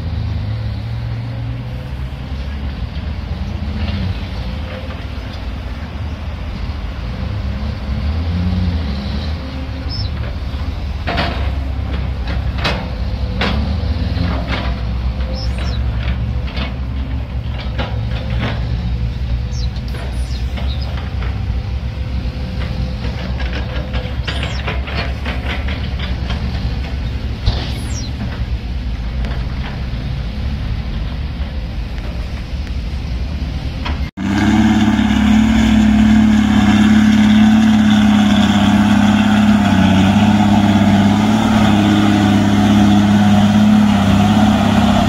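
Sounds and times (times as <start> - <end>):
excavator diesel engine under load: 0.0 - 45.0.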